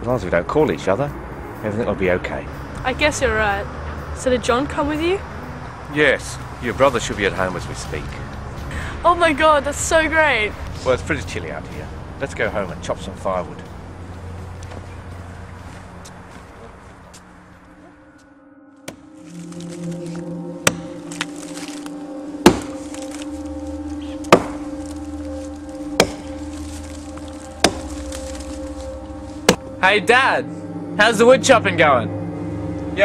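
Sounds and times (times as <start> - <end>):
background music: 0.0 - 33.0
axe chopping into tree trunk: 20.7 - 21.8, 22.4 - 23.3, 24.1 - 24.8, 25.9 - 28.6.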